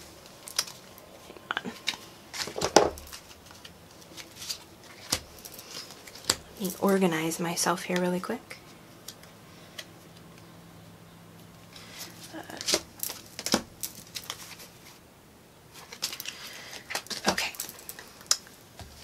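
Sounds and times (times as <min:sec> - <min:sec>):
cards clicking and rustling: 0:01.7 - 0:07.0, 0:11.7 - 0:15.0, 0:15.8 - 0:19.0.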